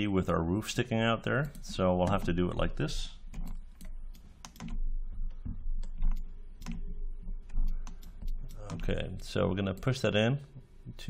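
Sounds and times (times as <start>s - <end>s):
keyboard keys clicking: 3.3s - 4.8s.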